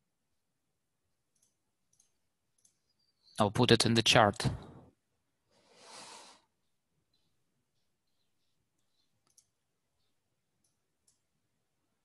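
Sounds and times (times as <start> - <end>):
faint clicks: 1.3 - 2.8, 8.8 - 9.6, 10.6 - 11.3.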